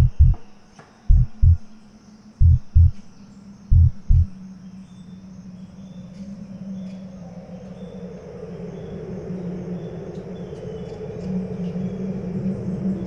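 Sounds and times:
heartbeat thumps: 0.0 - 1.8, 2.4 - 3.1, 3.7 - 4.5
steady low hum: 0.0 - 5.9
high insect drone: 0.0 - 13.0.

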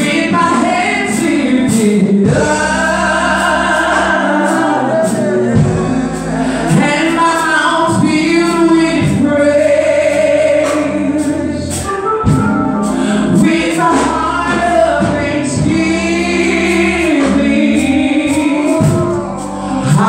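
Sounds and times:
woman singing gospel song: 0.0 - 12.4, 13.1 - 20.0
instrumental accompaniment: 0.0 - 20.0.

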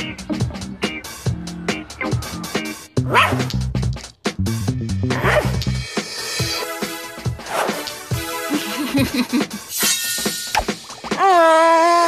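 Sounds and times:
cartoon background music: 0.0 - 12.0
dog yelping barks: 3.1 - 3.5, 5.2 - 5.6.

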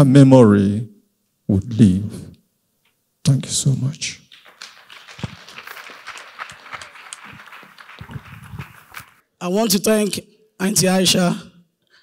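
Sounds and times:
audience applauding: 4.3 - 9.2.

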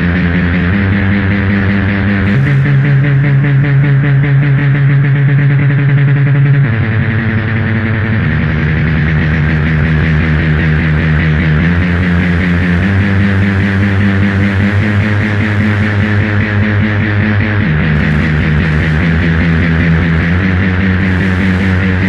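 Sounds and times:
analog electronic drones: 0.0 - 22.0
distorted pulsing noise: 0.0 - 22.0.

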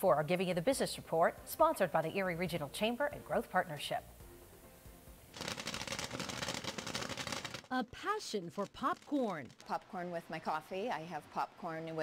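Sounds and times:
popcorn rattling onto metal tray: 5.4 - 7.7, 8.5 - 9.9.

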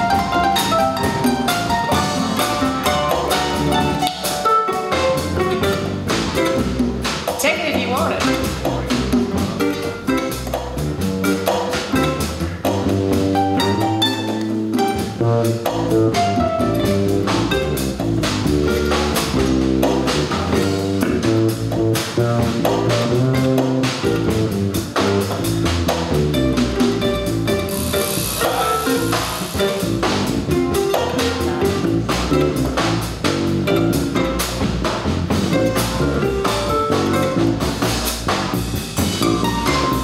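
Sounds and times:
double bass plucking: 0.0 - 40.0
drum kit: 0.0 - 40.0
harp plucking: 0.0 - 40.0.

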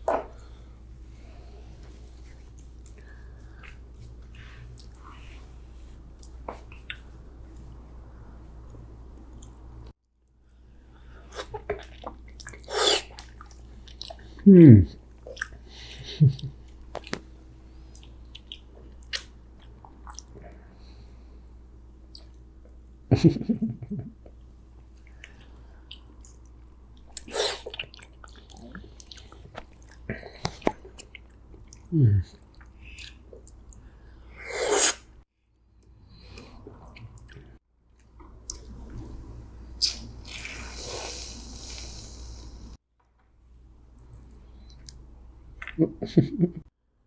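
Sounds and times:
person humming hmm: 14.4 - 15.0, 31.9 - 32.4
chewing and mouth clicks: 17.9 - 20.5, 24.9 - 33.8
short hissing burst: 39.8 - 42.8
breathy puff of air: 40.4 - 42.8.

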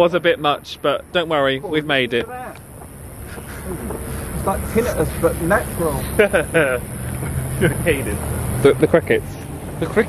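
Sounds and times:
night insects droning: 0.0 - 8.9
people talking and laughing: 1.4 - 10.0.

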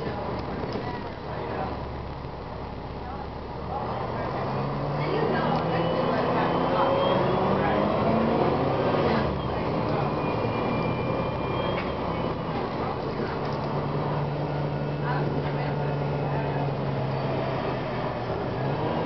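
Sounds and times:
bus diesel engine: 0.0 - 19.0
thin high whine: 4.4 - 17.3.

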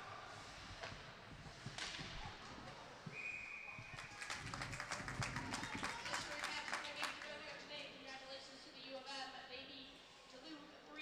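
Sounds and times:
spectators clapping: 3.8 - 7.5.

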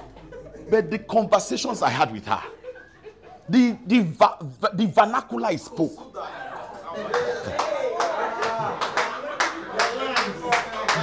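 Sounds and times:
man talking: 0.7 - 2.6, 3.5 - 6.2
sharp hand claps: 7.1 - 11.0.

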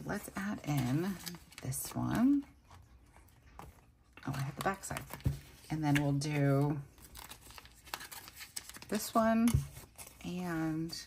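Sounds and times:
plastic and paper rustling: 0.0 - 11.0.

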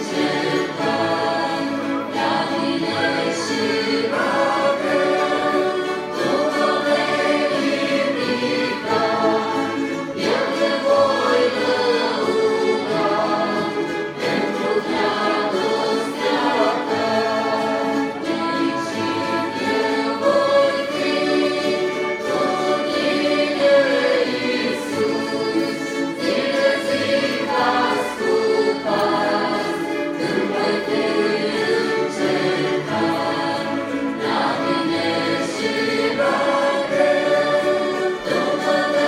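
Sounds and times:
choir singing held notes: 0.0 - 39.0
orchestra accompanying: 0.0 - 39.0.

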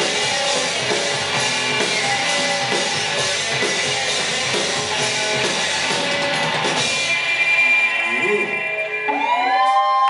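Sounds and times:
electric guitars ringing out: 0.0 - 10.0.

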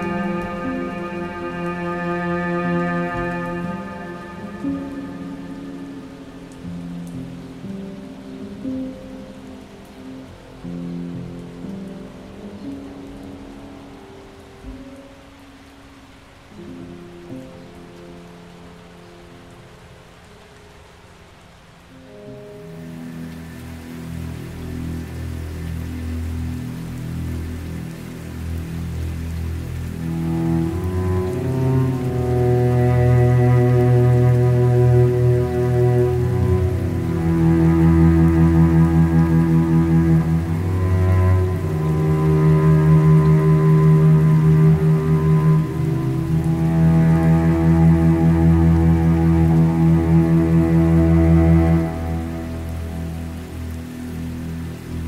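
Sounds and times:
bowed cello and low strings: 0.0 - 55.0
steady rain: 0.0 - 55.0.

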